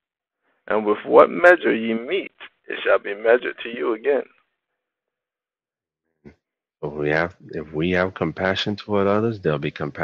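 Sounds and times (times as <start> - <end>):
person speaking: 0.7 - 4.3, 6.8 - 10.0.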